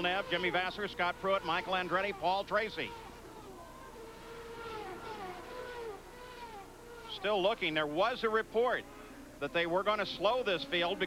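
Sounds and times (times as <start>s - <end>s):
race car engines passing: 0.0s - 11.0s.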